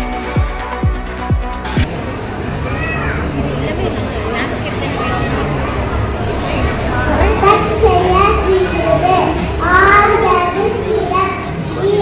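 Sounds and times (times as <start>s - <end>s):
children reciting over loudspeaker: 5.0s - 12.0s.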